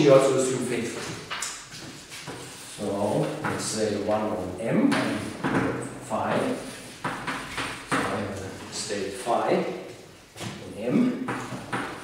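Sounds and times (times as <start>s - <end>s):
man talking: 0.0s - 1.2s, 2.8s - 6.8s, 7.9s - 11.4s
chalk scraping on blackboard: 1.7s - 3.1s.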